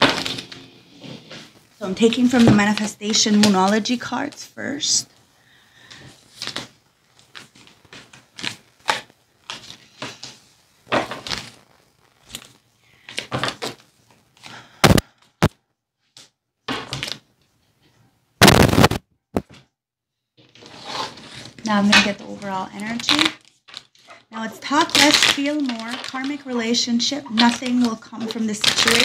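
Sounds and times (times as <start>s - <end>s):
cards shuffling: 0.0s - 3.9s, 20.6s - 26.7s, 27.3s - 29.0s.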